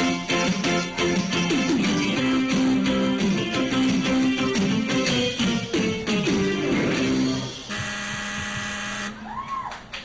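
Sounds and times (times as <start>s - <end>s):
background music: 0.0s - 7.8s
game show buzzer: 7.3s - 9.2s.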